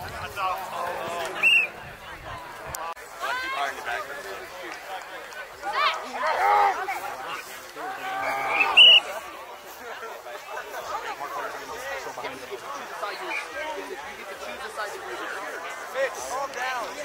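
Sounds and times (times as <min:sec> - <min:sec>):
players shouting and chatter: 0:00.0 - 0:17.0.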